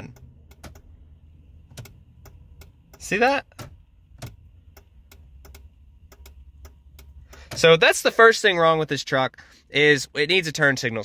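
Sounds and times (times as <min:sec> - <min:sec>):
turn signal clicking: 0:00.0 - 0:07.8
low steady rumble: 0:00.0 - 0:11.0.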